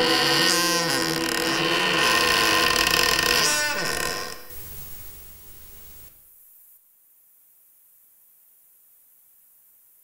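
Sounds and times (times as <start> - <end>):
faint hiss: 4.2 - 10.0.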